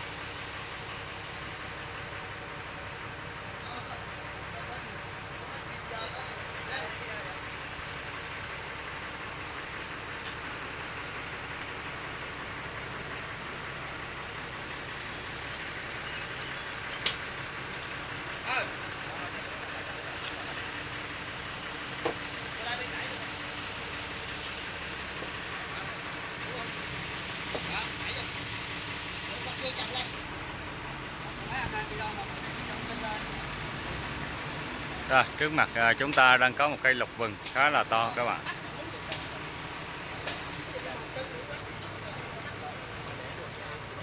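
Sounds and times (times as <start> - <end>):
outdoor background noise: 0.0 - 44.0
faint voices: 18.4 - 21.0, 34.9 - 44.0.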